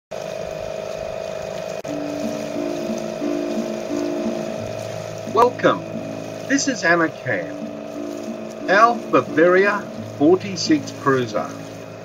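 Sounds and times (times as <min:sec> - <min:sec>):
constant hum: 0:00.2 - 0:12.0
held musical notes: 0:01.8 - 0:12.0
steady rushing noise: 0:01.8 - 0:12.0.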